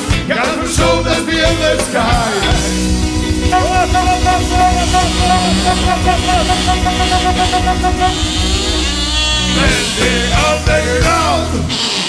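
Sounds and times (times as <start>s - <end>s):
rock band playing: 0.0s - 11.7s
jaw harp twanging drone: 2.5s - 10.9s.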